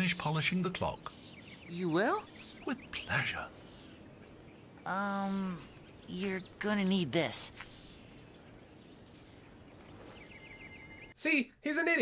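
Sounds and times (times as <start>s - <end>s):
high chirping trill: 5.8s - 11.2s.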